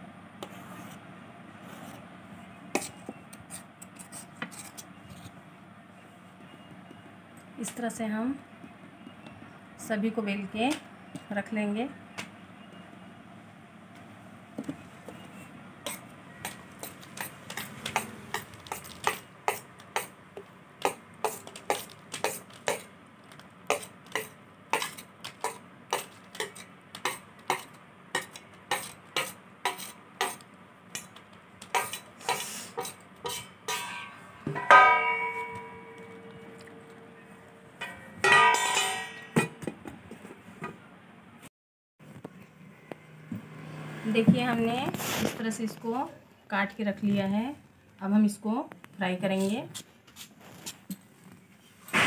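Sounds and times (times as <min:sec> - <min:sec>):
steel clattering: 0:33.3 - 0:37.0, 0:37.8 - 0:39.6
metallic clang ringing: 0:33.4 - 0:39.6.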